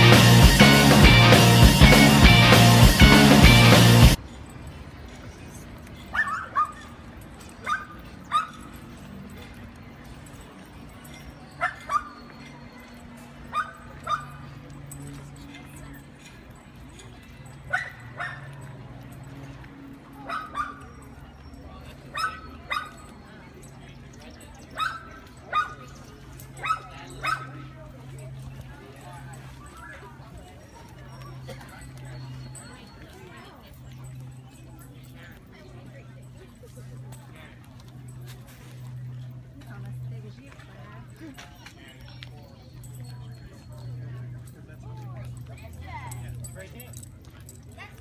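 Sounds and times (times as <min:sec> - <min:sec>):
dog barking: 0:06.1 - 0:06.8, 0:13.5 - 0:14.3, 0:17.7 - 0:18.5, 0:20.3 - 0:20.8, 0:22.1 - 0:23.0, 0:26.6 - 0:27.6.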